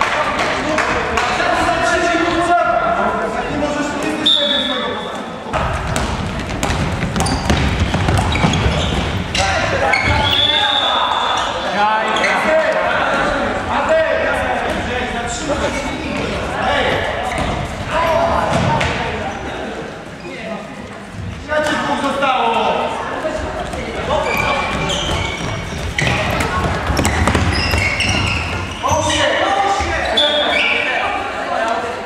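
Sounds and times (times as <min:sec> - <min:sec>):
ball bouncing on court floor: 0:05.6 - 0:09.2, 0:23.7 - 0:28.7.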